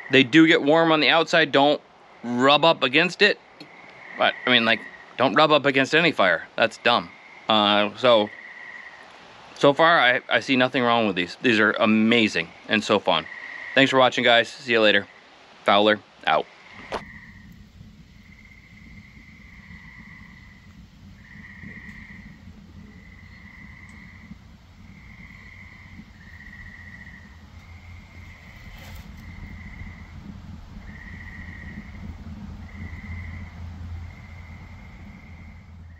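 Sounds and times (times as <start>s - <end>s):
wood fire burning and crackling: 14.1s - 35.9s.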